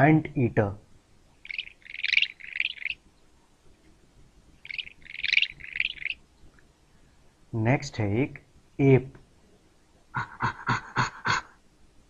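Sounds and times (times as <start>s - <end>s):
high chirping animal call: 1.4s - 3.1s, 4.6s - 6.2s.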